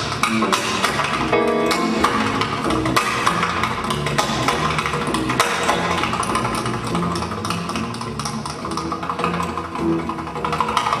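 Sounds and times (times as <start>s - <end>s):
jazz combo playing blues: 0.0s - 10.9s
walking double bass: 0.0s - 11.0s.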